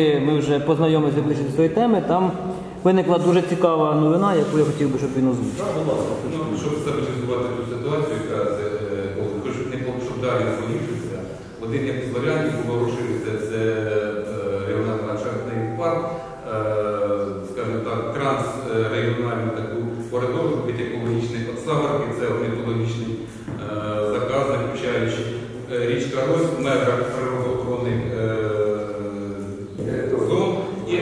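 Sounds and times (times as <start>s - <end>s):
man talking: 0.0s - 31.0s.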